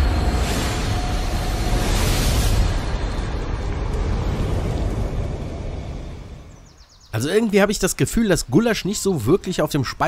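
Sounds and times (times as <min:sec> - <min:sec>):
noisy fire rumble: 0:00.0 - 0:07.0.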